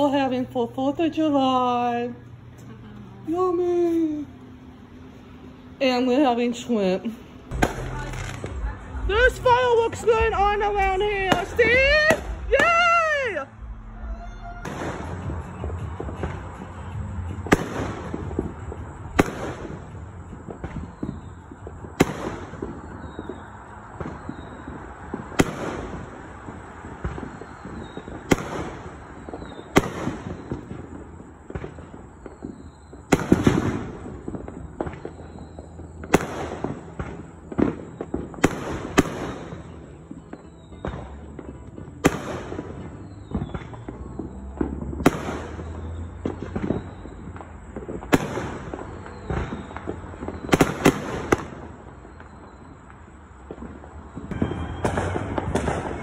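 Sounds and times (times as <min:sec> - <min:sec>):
firework crackling: 0:00.0 - 0:56.0.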